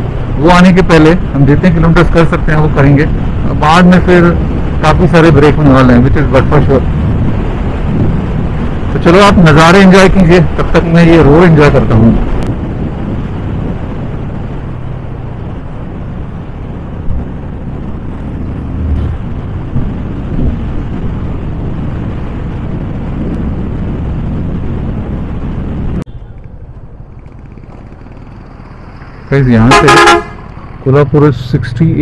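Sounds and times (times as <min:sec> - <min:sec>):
wind on microphone: 0:06.7 - 0:09.0, 0:11.8 - 0:30.8
motorcycle engine running: 0:26.1 - 0:31.0.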